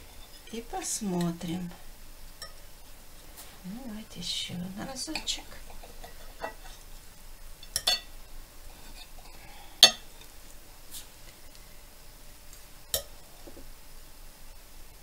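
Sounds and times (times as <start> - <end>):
cutlery clinking on ceramic plate: 5.2 - 6.8, 7.6 - 8.1, 9.8 - 10.1.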